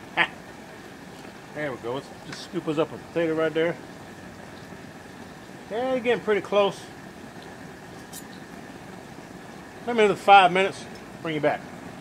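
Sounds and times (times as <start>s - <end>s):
propane burner hissing: 0.0s - 12.0s.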